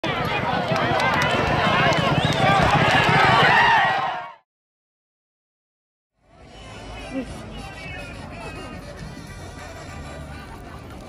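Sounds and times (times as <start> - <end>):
galloping hooves on dirt: 0.0 - 3.9
spectators shouting and cheering: 0.0 - 4.4.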